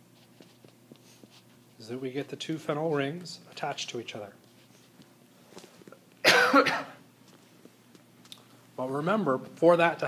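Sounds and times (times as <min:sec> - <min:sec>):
man coughing: 0:06.2 - 0:07.0.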